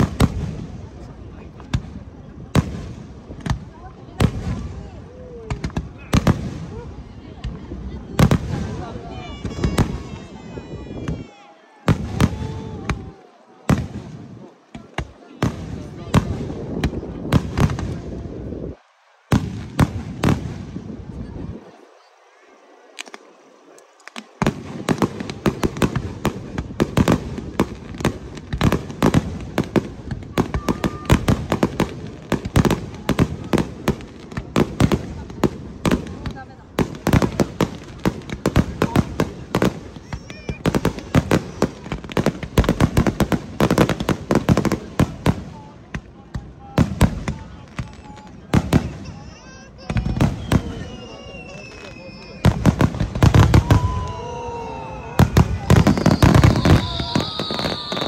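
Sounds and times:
fireworks bangs: 0.0 - 58.0.

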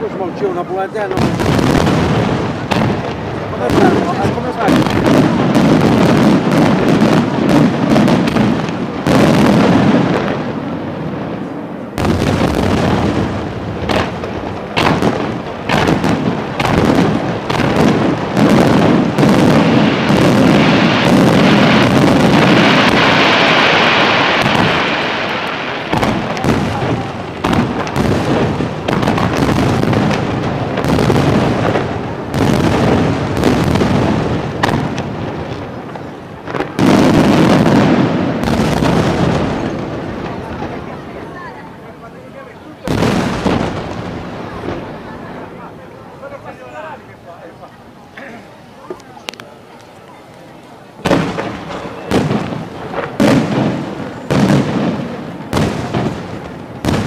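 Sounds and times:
crackling hiss: 0.0 - 57.0
fireworks bursting: 0.0 - 57.0.

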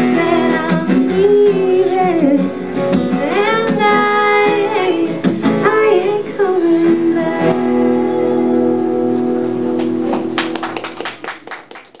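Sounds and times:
person singing: 0.0 - 2.6, 3.2 - 8.9
acoustic guitar chord ringing: 2.0 - 11.0
audience applause: 9.7 - 12.0.

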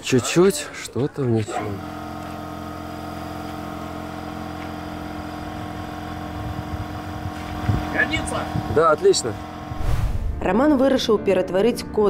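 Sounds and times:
engine idling: 1.5 - 9.8.

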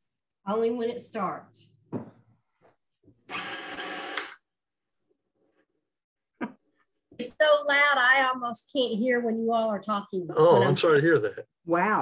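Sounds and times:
electric stand mixer running: 3.2 - 4.4.

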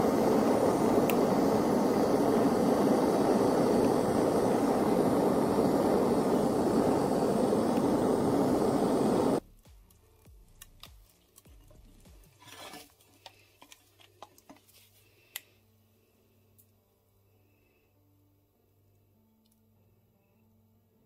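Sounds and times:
gas blowtorch flame: 0.0 - 9.4
brick scuffing: 12.2 - 13.0.

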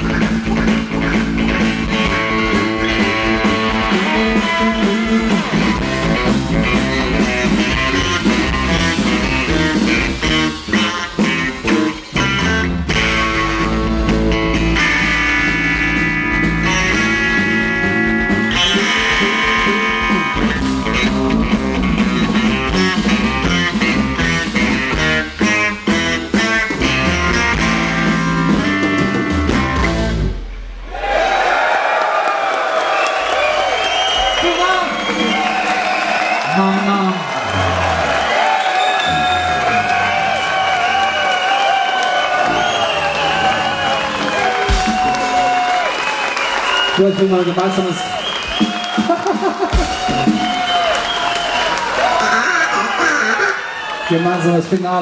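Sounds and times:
live psychedelic rock band: 0.0 - 30.6, 41.4 - 53.5.

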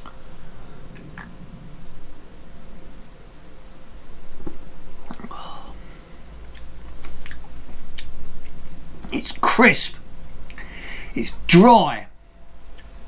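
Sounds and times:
mouth clicks and lip smacks: 4.4 - 5.3, 6.4 - 9.2
swallowing: 4.4 - 5.4.

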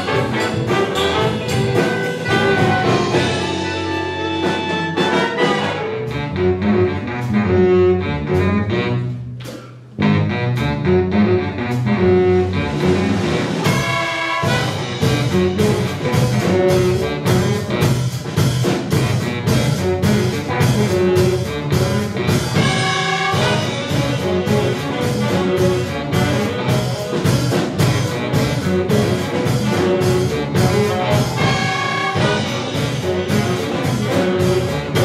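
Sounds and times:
drum beat: 0.0 - 5.8, 13.0 - 35.0
funk band playing: 0.0 - 35.0.

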